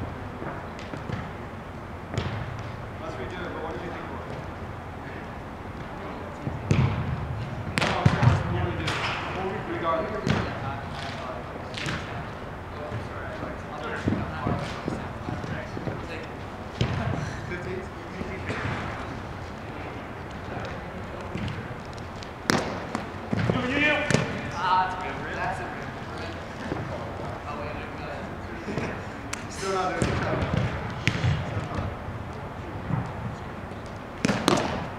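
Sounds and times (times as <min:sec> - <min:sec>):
ball slapped and bouncing off net: 0:02.1 - 0:02.8, 0:05.8 - 0:09.3, 0:10.2 - 0:12.2, 0:16.8 - 0:17.2, 0:18.4 - 0:19.1, 0:20.5 - 0:24.4, 0:29.3 - 0:31.9, 0:33.8 - 0:34.9
players' voices: 0:02.1 - 0:34.9.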